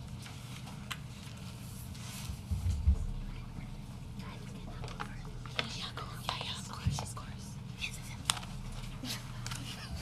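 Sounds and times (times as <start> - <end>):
room hum: 0.0 - 10.0
whispered talk: 2.9 - 9.8.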